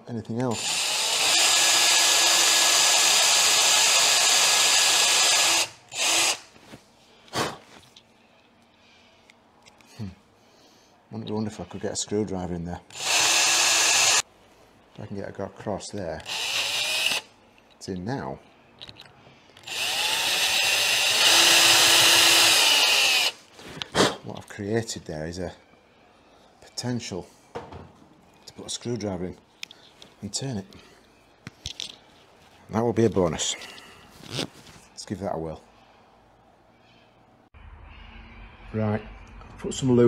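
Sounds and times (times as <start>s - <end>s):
cordless drill running: 0.5s - 6.5s, 12.9s - 14.2s, 16.2s - 17.3s, 19.6s - 23.4s.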